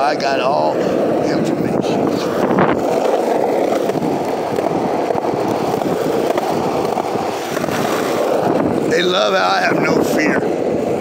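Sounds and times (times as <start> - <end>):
skateboard wheels rolling on pavement: 0.0 - 11.0.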